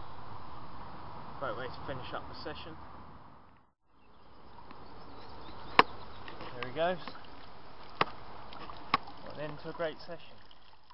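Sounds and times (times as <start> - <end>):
outdoor background noise: 0.0 - 10.9.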